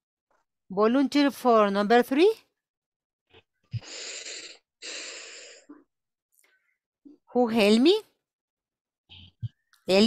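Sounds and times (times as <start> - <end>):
breaths close to microphone: 3.7 - 6.8.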